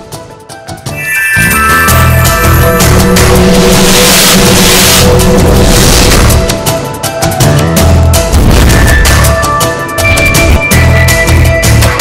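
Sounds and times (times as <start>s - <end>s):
theme music with bass pulse: 0.0s - 12.0s
loud rushing swell: 1.0s - 6.6s.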